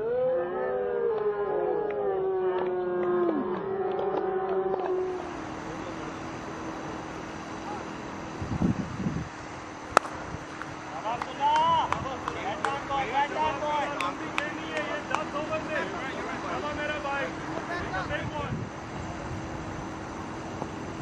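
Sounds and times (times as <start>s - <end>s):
players calling out: 9.7s - 18.5s
cricket bat striking ball: 9.9s - 12.9s.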